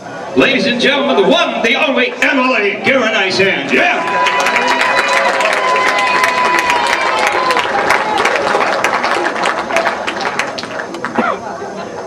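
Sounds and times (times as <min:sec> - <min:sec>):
audience applauding: 0:03.7 - 0:11.2.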